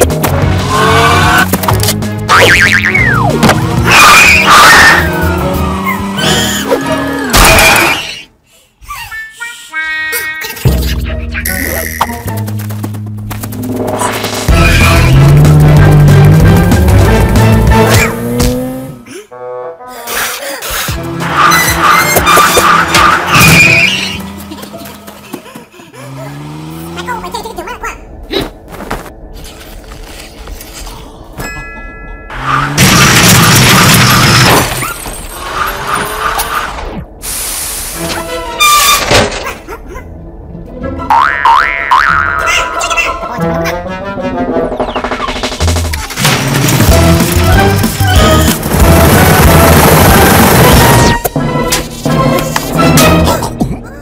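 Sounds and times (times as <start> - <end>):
cartoon music: 2.3 - 7.0, 8.9 - 12.5, 40.9 - 46.2
cartoon speeding vehicle effects: 2.3 - 7.3, 13.8 - 25.2, 25.9 - 28.1
comic sound effects: 2.3 - 8.2, 9.0 - 12.3, 41.0 - 46.4
background music: 9.2 - 19.8, 40.0 - 54.0.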